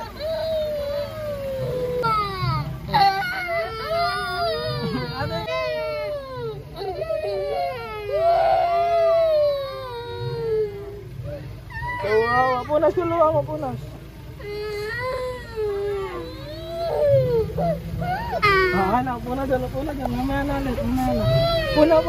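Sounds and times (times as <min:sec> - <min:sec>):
young children crying: 0:00.0 - 0:22.0.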